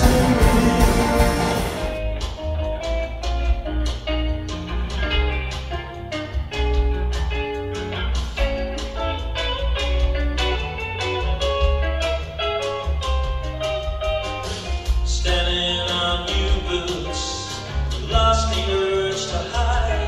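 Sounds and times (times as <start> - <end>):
electric guitar playing: 0.0 - 20.0.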